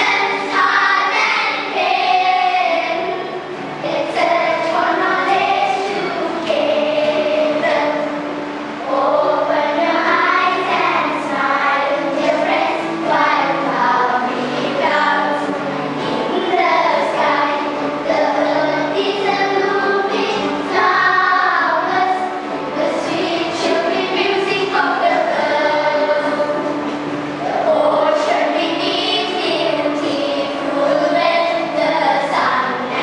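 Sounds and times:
children singing: 0:00.0 - 0:33.0
musical backing: 0:00.0 - 0:33.0.

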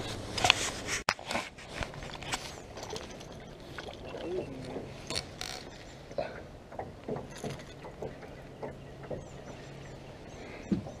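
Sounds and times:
fishing tackle clicking and knocking: 0:06.7 - 0:09.2.

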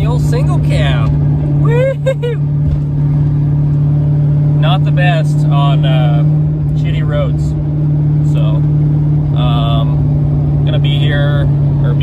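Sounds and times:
low road noise: 0:00.0 - 0:12.0
pickup engine drone: 0:00.0 - 0:12.0.

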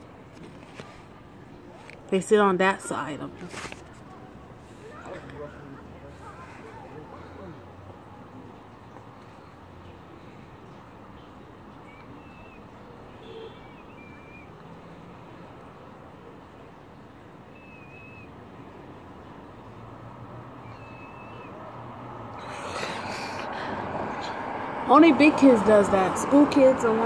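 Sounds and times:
urban street background noise: 0:00.0 - 0:27.0
small birds chirping: 0:08.4 - 0:14.7.

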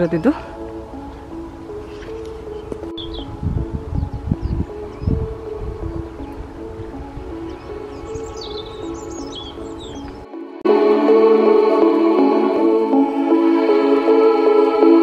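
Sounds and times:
small birds chirping: 0:00.0 - 0:10.3
soft music of held notes: 0:00.0 - 0:15.0.

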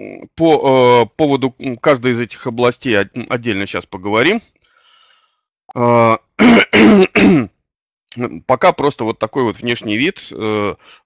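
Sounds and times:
man clearing throat: 0:06.0 - 0:07.6
man coughing: 0:06.4 - 0:07.6.

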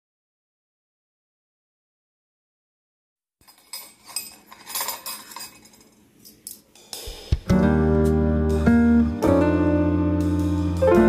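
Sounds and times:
metal utensils clinking on dishes: 0:03.4 - 0:06.7.

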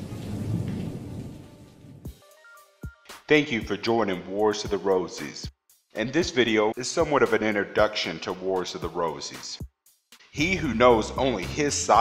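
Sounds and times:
low rumble: 0:00.0 - 0:02.1.

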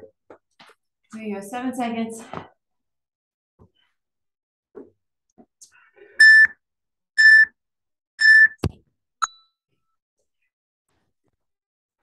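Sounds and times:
interval timer beeping: 0:06.2 - 0:06.6, 0:07.2 - 0:07.5, 0:08.2 - 0:08.6.

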